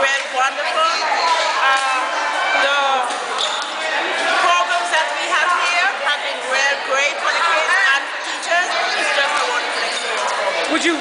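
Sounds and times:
voices talking in a hall: 0.0 - 11.0.

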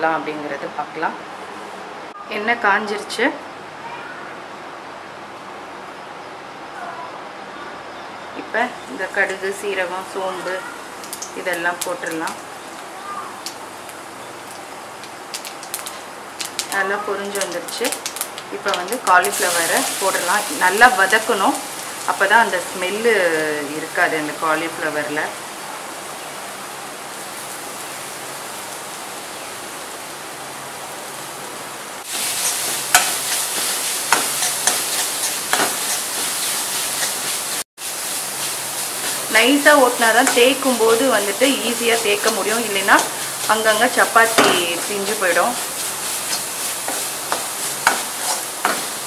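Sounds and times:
seeds sizzling in hot oil: 8.7 - 28.7, 32.0 - 49.0
spoon scraping a pan: 32.1 - 37.6, 38.4 - 49.0.

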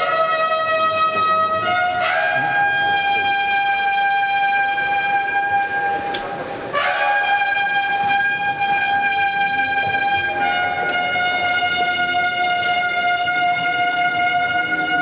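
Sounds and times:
trumpet call: 0.0 - 15.0.

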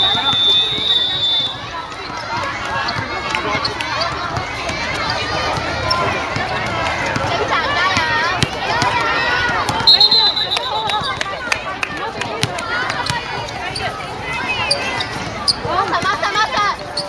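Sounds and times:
girls calling and shouting: 0.0 - 17.0.

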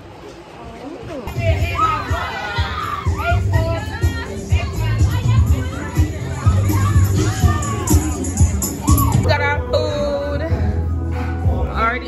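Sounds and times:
children shouting and yelling: 1.3 - 9.3
music playing: 1.3 - 12.0.

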